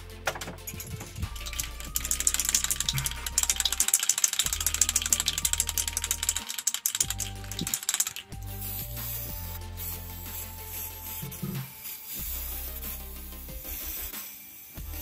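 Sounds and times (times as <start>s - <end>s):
background music: 0.0s - 15.0s
spray can ball rattling: 0.3s - 15.0s.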